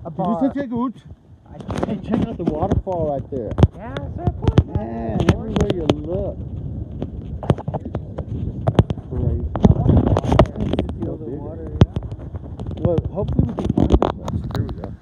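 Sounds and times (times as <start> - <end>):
people talking: 0.0 - 6.4, 7.4 - 15.0
steady low rumble: 0.0 - 15.0.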